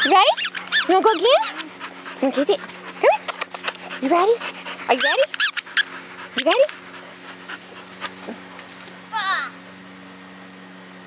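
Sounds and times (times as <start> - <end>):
dog whining: 0.0 - 7.2
steady low hum: 0.0 - 11.0.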